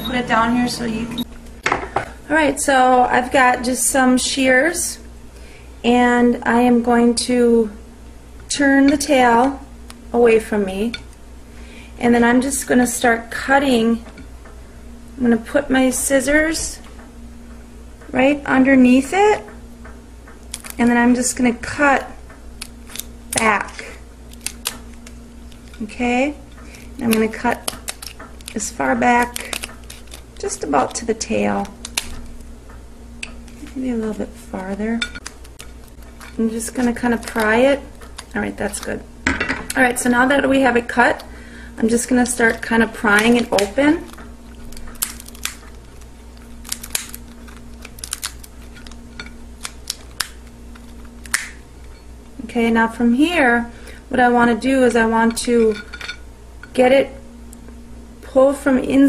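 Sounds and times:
steady low hum: 0.0 - 59.0
shears clicking through shell: 20.4 - 20.9, 22.3 - 25.9, 26.5 - 39.0, 41.9 - 52.0.

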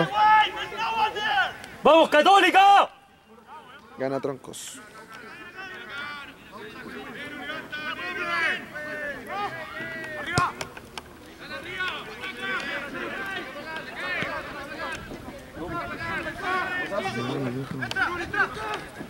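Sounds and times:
voices shouting and calling: 0.0 - 19.0.

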